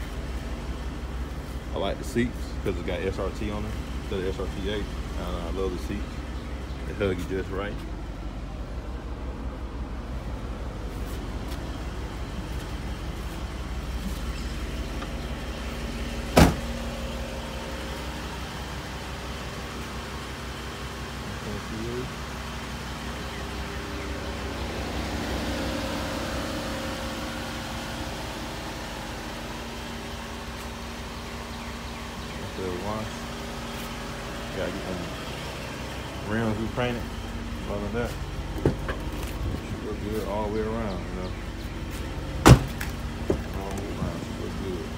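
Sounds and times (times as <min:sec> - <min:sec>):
car engine idling: 0:00.0 - 0:44.9.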